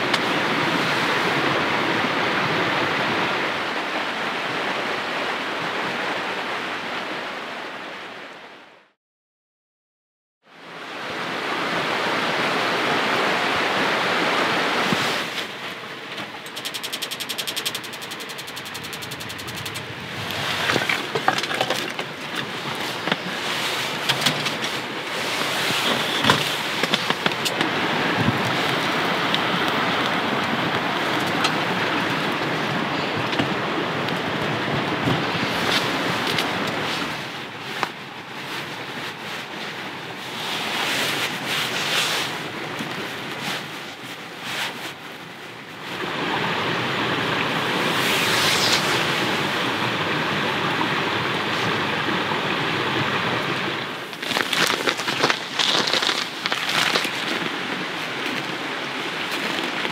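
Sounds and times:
mountain stream rushing: 0.0 - 9.0, 10.5 - 59.9.

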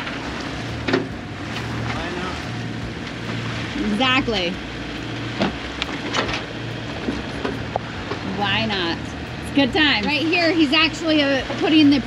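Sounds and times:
water washing past hull: 0.0 - 9.4
low hum: 0.0 - 12.0.

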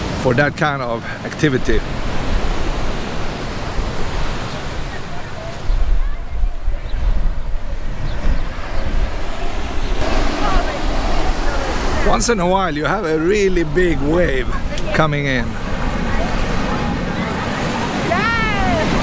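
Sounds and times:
ocean surf washing onto beach: 0.0 - 19.0
wind buffeting microphone: 1.6 - 19.0.

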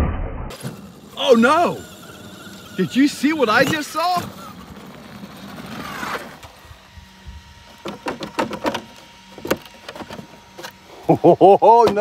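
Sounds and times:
electric motor whining: 0.5 - 12.0.

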